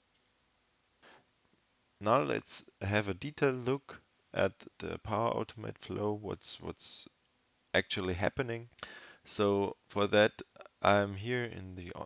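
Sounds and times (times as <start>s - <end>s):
computer mouse clicks: 0.1s - 0.4s.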